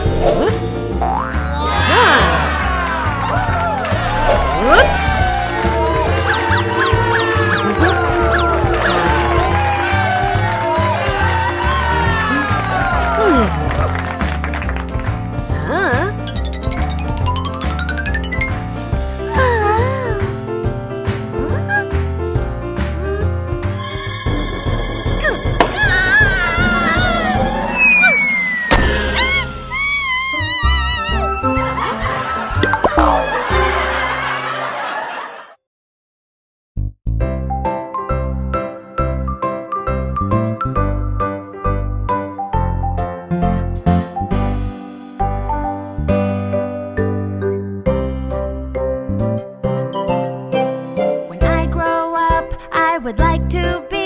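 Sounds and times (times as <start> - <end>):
cartoon background music: 0.0 - 34.5, 36.8 - 54.0
falling whistle tone: 27.7 - 30.0
springy cartoon sound effects: 32.6 - 33.4.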